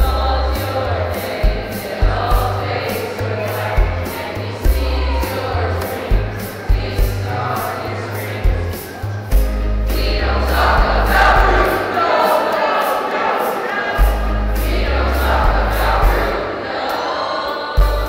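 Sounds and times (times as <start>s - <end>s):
low bass line: 0.0s - 2.8s, 3.8s - 7.5s, 9.3s - 11.8s, 14.0s - 16.3s
steady ticking beat: 0.0s - 16.6s
choir singing: 0.0s - 18.0s.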